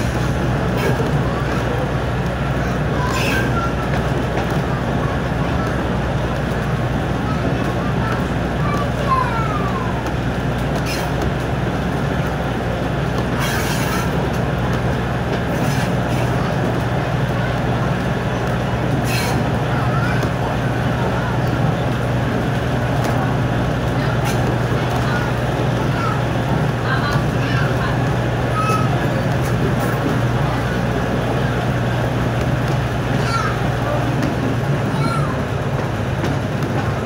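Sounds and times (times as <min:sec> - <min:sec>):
railway carriage rumbling on track: 0:00.0 - 0:37.0.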